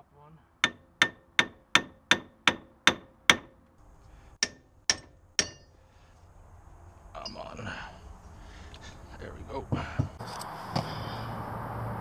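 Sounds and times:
sharp metallic knock: 0:00.6 - 0:03.6, 0:04.4 - 0:05.7.

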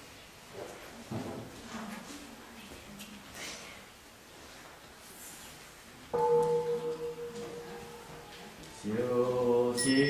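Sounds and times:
bell ringing: 0:06.2 - 0:08.2, 0:09.8 - 0:10.0
voices chanting: 0:07.5 - 0:10.0.

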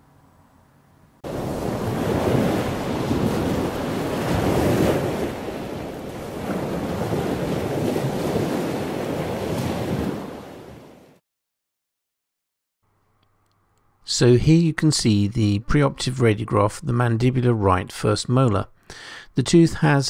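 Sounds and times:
wind: 0:00.0 - 0:11.2
waves breaking: 0:01.2 - 0:11.2.

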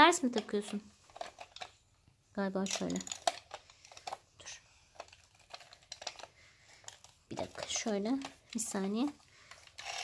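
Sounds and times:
woman's voice: 0:00.0 - 0:00.9, 0:02.4 - 0:03.1, 0:07.3 - 0:09.2
plastic toy drill clicks: 0:09.5 - 0:10.0.

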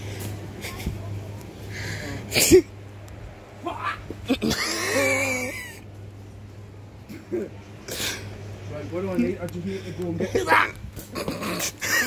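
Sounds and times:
man yelping: 0:03.6 - 0:04.1, 0:10.3 - 0:10.8.

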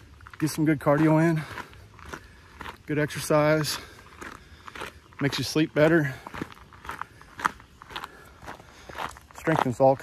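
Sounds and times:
footsteps on forest trail: 0:00.0 - 0:10.0.

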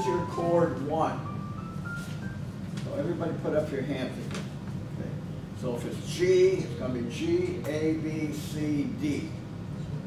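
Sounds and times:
person speaking: 0:00.0 - 0:01.0
electronic keyboard notes: 0:00.0 - 0:02.7.

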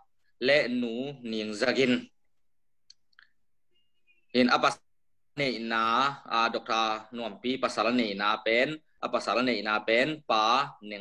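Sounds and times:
man speaking: 0:00.0 - 0:02.3, 0:04.3 - 0:11.0.

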